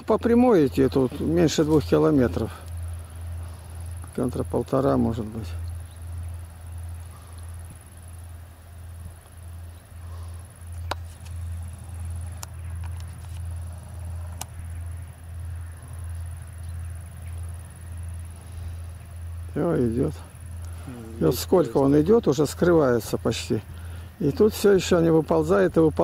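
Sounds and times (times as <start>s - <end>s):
distant freight train rumble: 0.0s - 26.0s.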